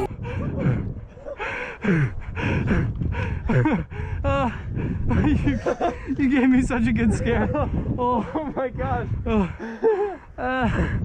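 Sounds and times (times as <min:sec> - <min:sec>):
man gasping and panting: 0:00.0 - 0:06.1, 0:09.1 - 0:11.0.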